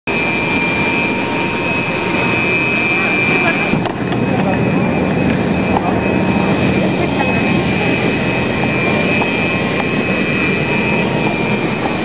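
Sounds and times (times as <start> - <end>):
high-pitched turbine whine: 0.1 - 12.0
jet turbines roaring: 0.1 - 12.0.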